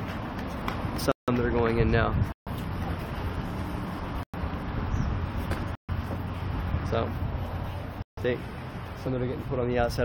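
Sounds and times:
wind rumble on microphone: 0.0 - 10.0.

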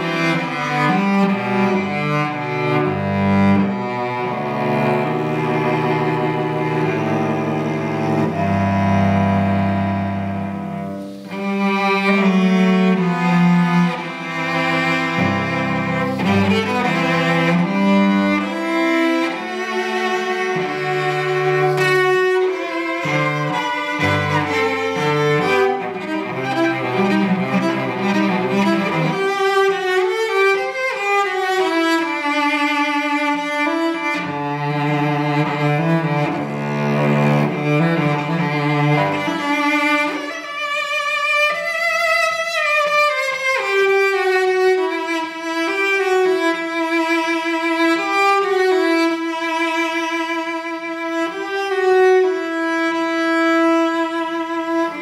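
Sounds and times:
solo cello bowed: 0.0 - 55.0.

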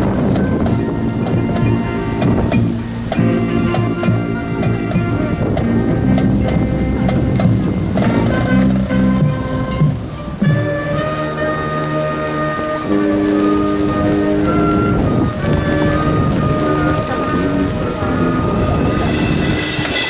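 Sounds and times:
brass band chords: 0.0 - 20.0
rain hiss: 0.0 - 20.0.

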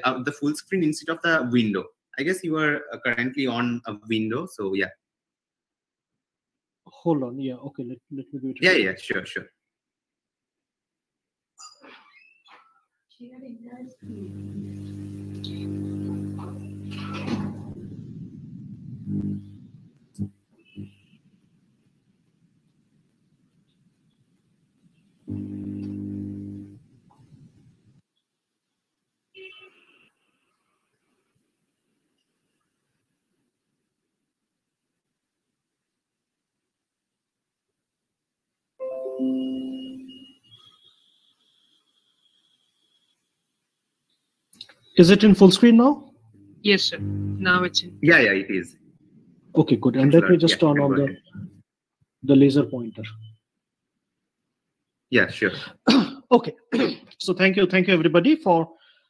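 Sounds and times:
low electrical hum: 14.0 - 21.1, 25.2 - 27.4, 46.2 - 48.6
electronic chime: 38.8 - 40.8
faint thin high tone: 38.8 - 43.4.

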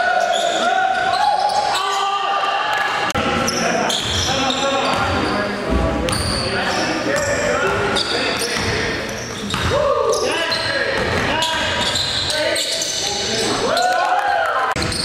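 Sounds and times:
players' voices: 0.0 - 15.0
shoe squeaks: 0.1 - 2.1, 3.4 - 13.6, 14.8 - 15.0.

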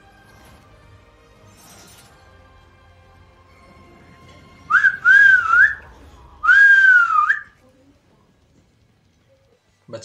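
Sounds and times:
person whistling: 4.7 - 5.8, 6.4 - 7.5.

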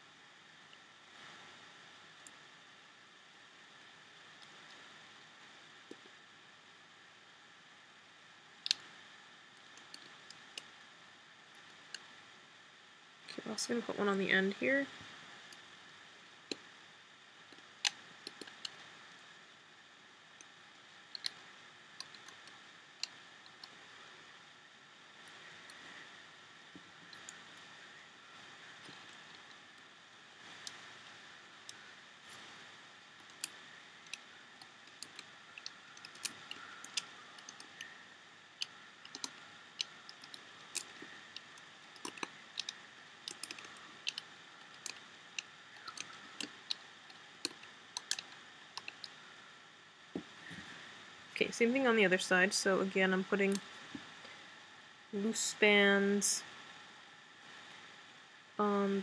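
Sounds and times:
rubber bands clicking on plastic pegs: 33.2 - 37.9, 38.5 - 49.2.

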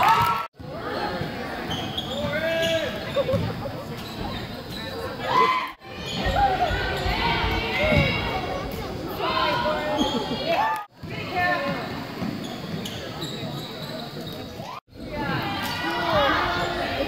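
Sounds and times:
spectators and players shouting: 5.0 - 11.8, 14.6 - 17.0.

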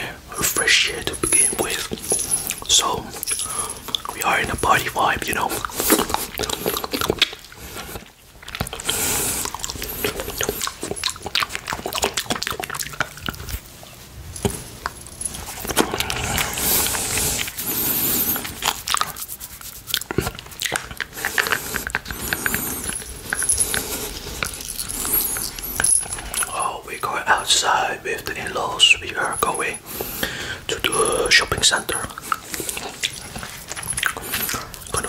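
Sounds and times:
wet mouth licking and sucking: 0.5 - 13.8, 14.4 - 26.6, 29.1 - 35.0.

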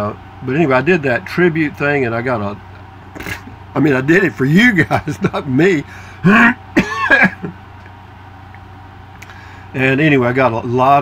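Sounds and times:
man clearing his throat: 3.2 - 3.6, 6.3 - 7.5.

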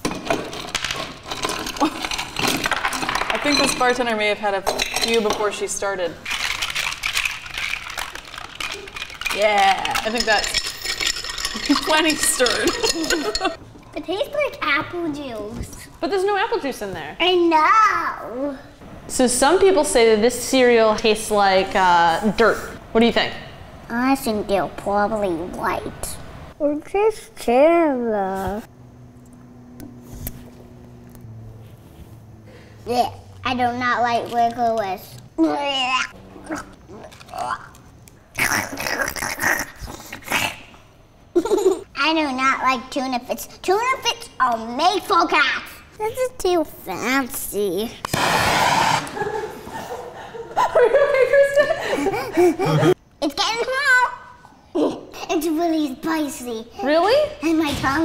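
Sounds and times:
metal cup clinking in ceramic bowl: 9.9 - 13.6.

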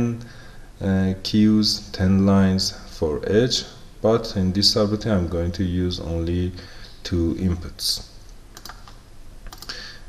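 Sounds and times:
faint room hiss: 0.0 - 10.0
computer input clicks: 8.5 - 9.8.

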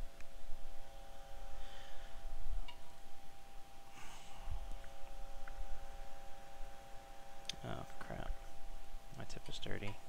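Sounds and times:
faint electrical whine: 0.0 - 10.0.

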